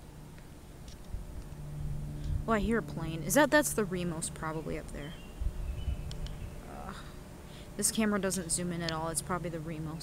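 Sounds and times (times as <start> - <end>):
light aircraft engine droning: 0.0 - 10.0
low rumbling noise: 0.0 - 10.0.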